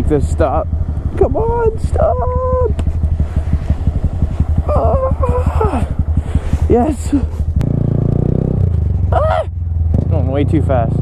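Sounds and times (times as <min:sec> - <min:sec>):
motorcycle engine at low revs: 0:00.0 - 0:11.0.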